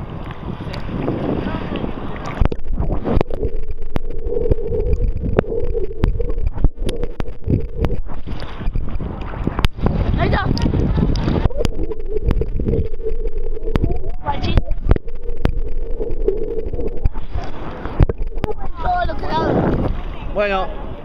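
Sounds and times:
muffled underwater rumbling: 0:00.0 - 0:21.0
sea water sloshing: 0:00.0 - 0:21.0
sharp clicks: 0:02.3 - 0:09.8, 0:10.5 - 0:18.7.

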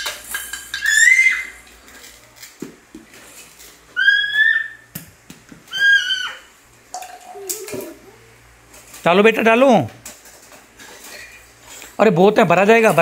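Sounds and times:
plastic toys clattering on tiled floor: 0:00.0 - 0:03.8.

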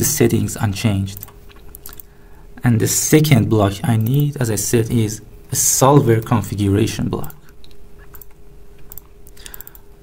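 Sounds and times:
faint steady hum: 0:00.0 - 0:10.0
keyboard and mouse clicks: 0:04.0 - 0:04.3, 0:07.2 - 0:09.9.

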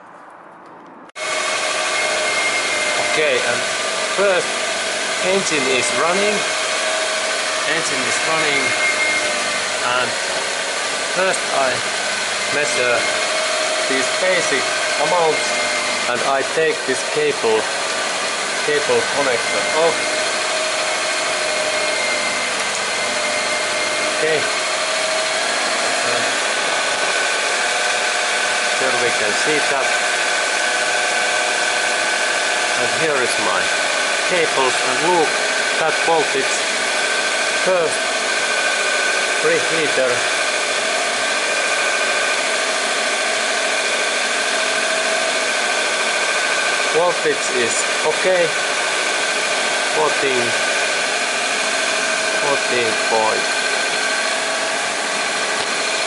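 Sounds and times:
whining tones: 0:00.0 - 0:56.0.

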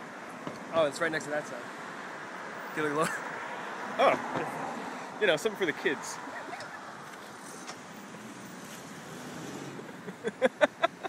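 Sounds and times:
road traffic noise: 0:00.0 - 0:11.0
car passing: 0:00.8 - 0:11.0
person laughing: 0:09.9 - 0:11.0.

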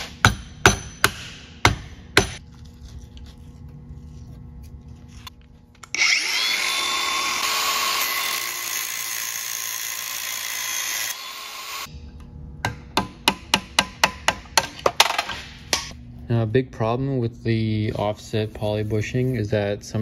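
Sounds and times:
angle grinder cutting metal: 0:05.9 - 0:11.9.

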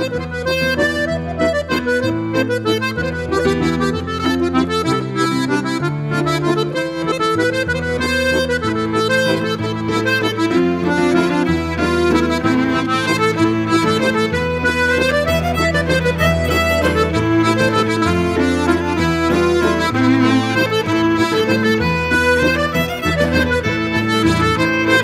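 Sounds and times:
accordion melody: 0:00.0 - 0:25.0
fiddle: 0:00.0 - 0:25.0
guitar: 0:00.0 - 0:25.0
held bass notes: 0:00.0 - 0:25.0.

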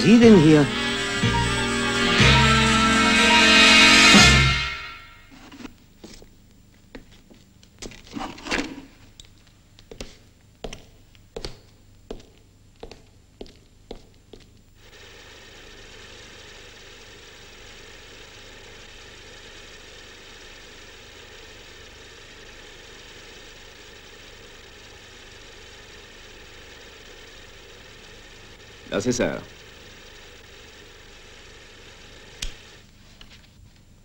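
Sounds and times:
faint hum: 0:00.0 - 0:34.0.

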